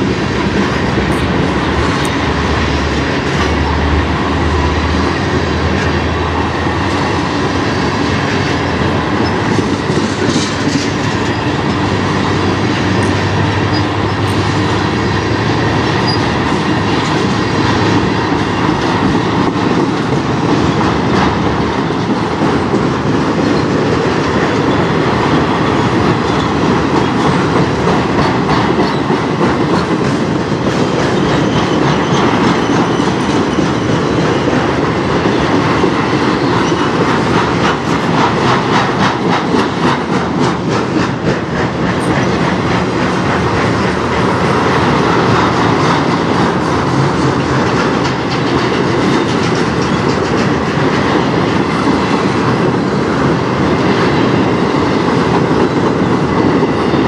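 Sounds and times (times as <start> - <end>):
steel wheels rumbling on rail: 0.0 - 57.0
wheels clicking over rail joints: 0.0 - 57.0.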